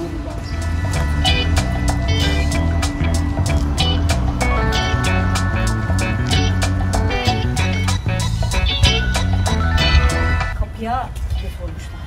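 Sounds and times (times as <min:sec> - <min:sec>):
background music with steady beat: 0:00.5 - 0:10.6.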